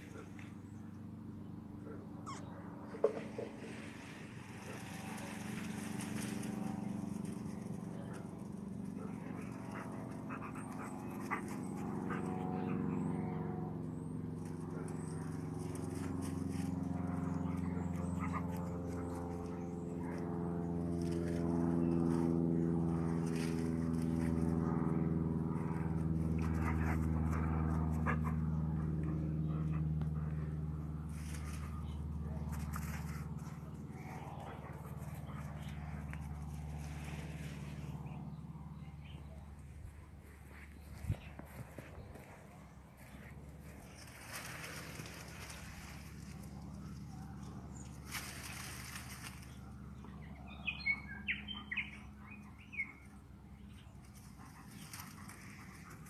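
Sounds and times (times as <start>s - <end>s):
steady low hum: 0.0s - 56.0s
dogs playing: 2.2s - 50.2s, 53.9s - 56.0s
dog whimpering: 2.3s - 2.5s.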